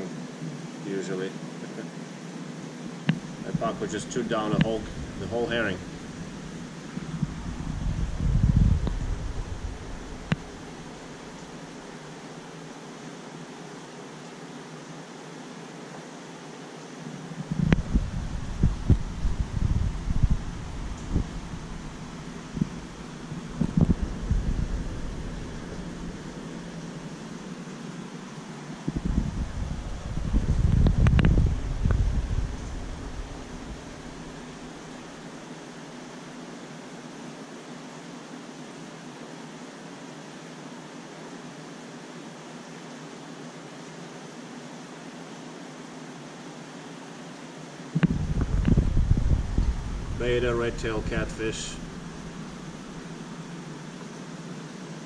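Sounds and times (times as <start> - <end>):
aquarium equipment whirring: 2.2 - 12.9, 17.1 - 36.1, 48.0 - 55.0
low rumbling: 3.1 - 11.9, 17.4 - 27.6, 28.8 - 35.1, 48.0 - 53.6.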